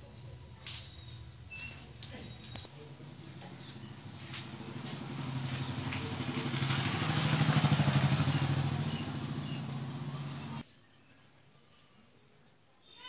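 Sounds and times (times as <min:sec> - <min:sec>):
small engine running: 0:03.6 - 0:10.6.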